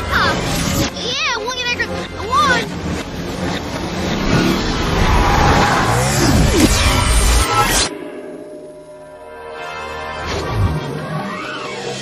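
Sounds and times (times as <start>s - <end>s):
cartoon car engine rush: 3.5s - 7.9s.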